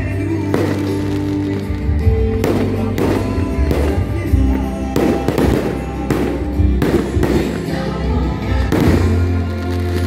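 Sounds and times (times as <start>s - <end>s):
loud music: 0.0s - 10.0s.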